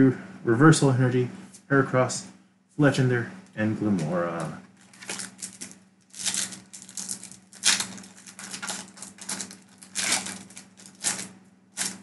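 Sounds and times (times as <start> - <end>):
steady low hum: 0.0 - 12.0
trading cards rustling and crinkling: 4.0 - 12.0.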